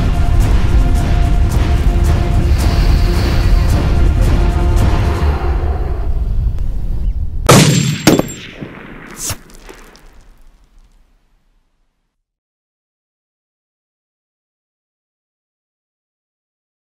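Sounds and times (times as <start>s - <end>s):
dramatic film music: 0.0s - 6.6s
loud gunshot with metallic clang: 7.5s - 10.0s.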